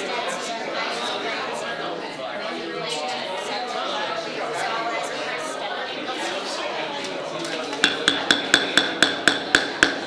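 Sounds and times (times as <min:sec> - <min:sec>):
gavel rapping: 0:07.8 - 0:10.0.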